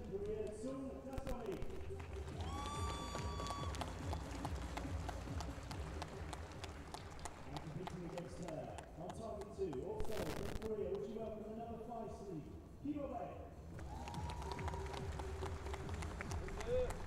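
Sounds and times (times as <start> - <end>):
crowd clapping: 1.3 - 9.9, 13.8 - 17.0.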